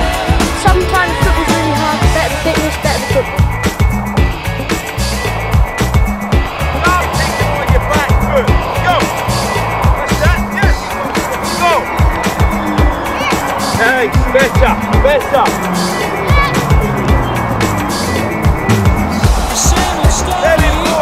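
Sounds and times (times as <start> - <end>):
music with steady bass beat: 0.0 - 21.0.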